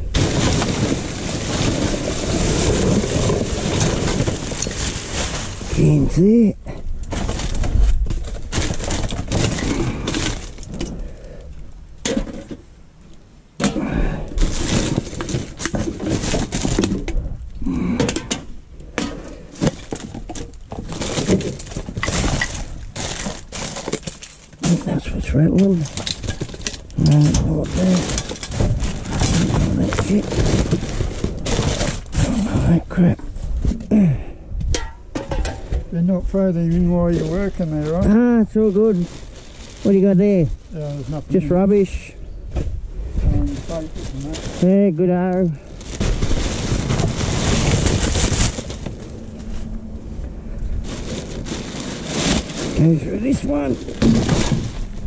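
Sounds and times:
plastic rubbish crinkling and clattering: 0.0s - 12.8s, 13.6s - 55.0s.

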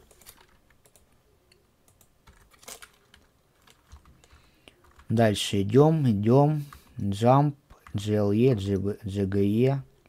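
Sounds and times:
keyboard and mouse clicks: 0.0s - 5.1s.

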